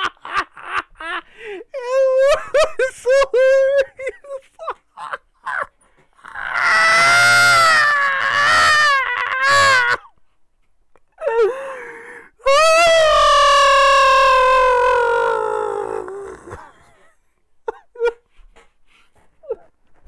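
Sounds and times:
man laughing high-pitched: 0.0 - 6.8, 17.6 - 18.3.

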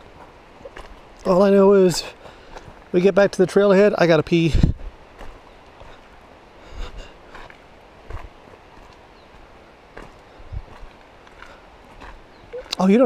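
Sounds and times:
faint steady hiss: 0.0 - 13.0
footsteps on dirt trail: 0.0 - 13.0.

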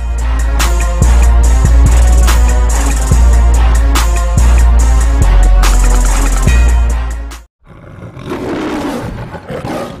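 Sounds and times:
music with heavy bass beat: 0.0 - 7.4
lion roaring: 7.6 - 10.0.

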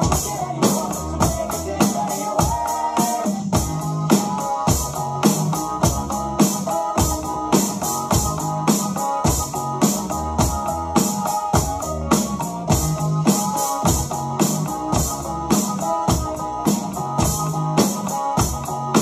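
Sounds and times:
electronic drum kit: 0.0 - 19.0
fast dance backing track: 0.0 - 19.0
synth keyboard melody: 0.0 - 19.0.

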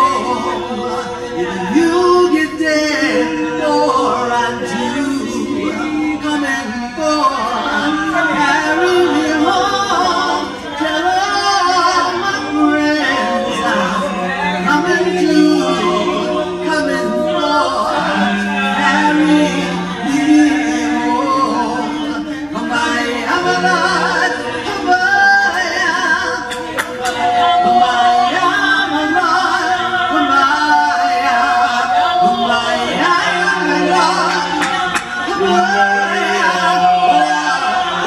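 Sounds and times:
group singing a cappella: 0.0 - 38.0.

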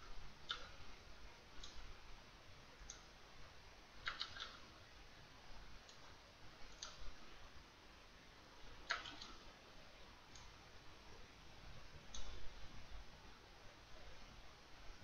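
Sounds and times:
low background hum: 0.0 - 15.0
computer mouse clicks: 0.4 - 0.8, 1.6 - 1.9, 4.0 - 4.6, 5.8 - 7.2, 8.8 - 9.4, 10.3 - 10.5, 12.1 - 12.4.

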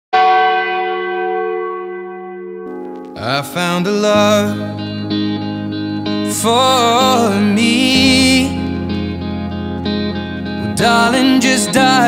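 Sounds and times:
church bell ringing: 0.2 - 5.9.

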